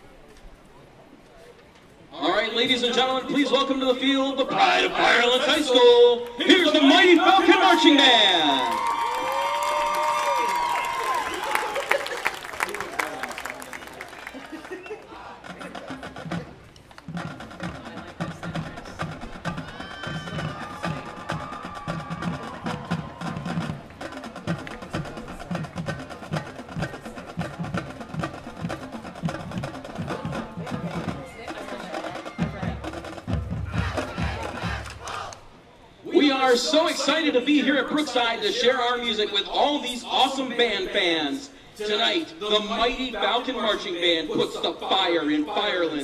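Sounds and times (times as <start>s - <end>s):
drumline playing a cadence: 15.2s - 35.7s.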